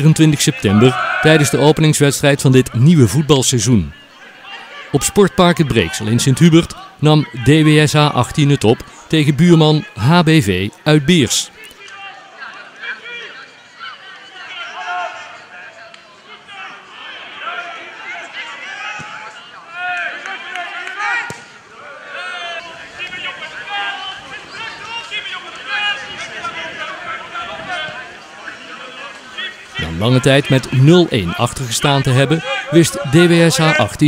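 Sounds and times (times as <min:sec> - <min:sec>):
players shouting: 0:00.0 - 0:34.0.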